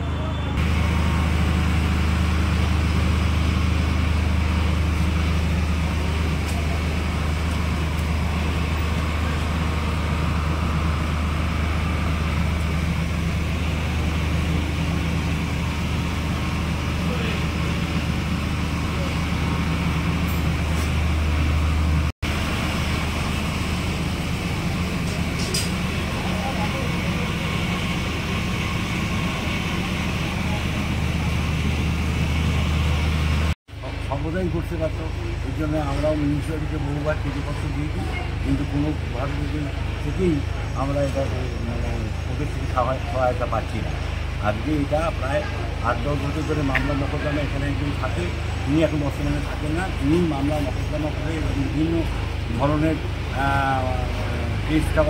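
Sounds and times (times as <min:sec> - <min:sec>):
diesel engine droning: 0:00.0 - 0:55.0
faint voices: 0:05.2 - 0:19.9, 0:25.2 - 0:55.0.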